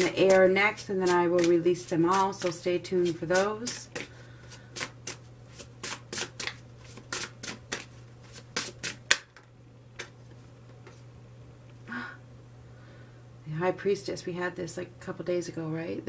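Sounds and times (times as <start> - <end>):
cards being shuffled by hand: 0.0 - 11.1.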